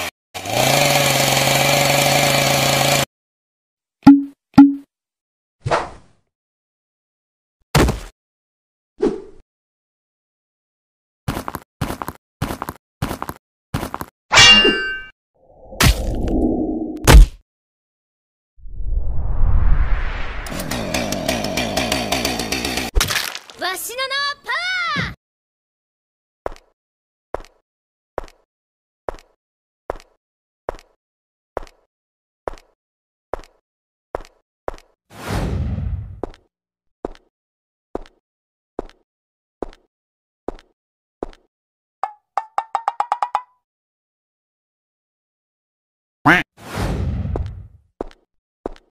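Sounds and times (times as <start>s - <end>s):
low rumble: 18.6s - 20.5s.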